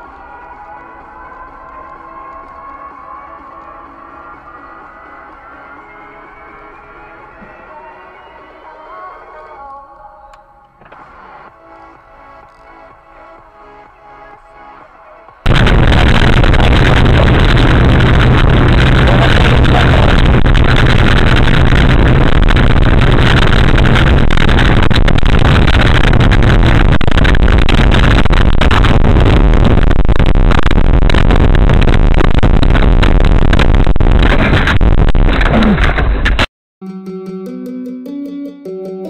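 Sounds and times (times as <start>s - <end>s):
tyres and engine rumble: 14.5s - 28.9s.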